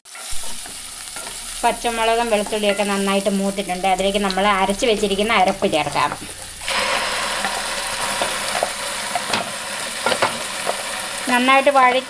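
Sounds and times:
paste sizzling in hot oil: 0.0 - 12.0.

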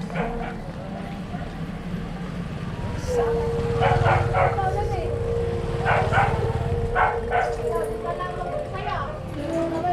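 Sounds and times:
dog barking: 0.1 - 0.6, 3.8 - 4.7, 5.8 - 7.7.

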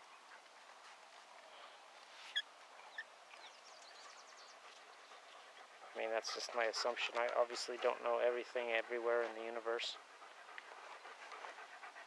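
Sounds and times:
birds chirping: 1.5 - 12.0.

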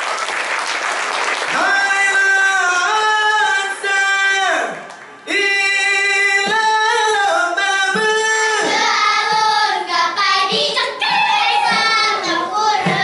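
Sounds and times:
girls singing a chant: 8.6 - 13.0.

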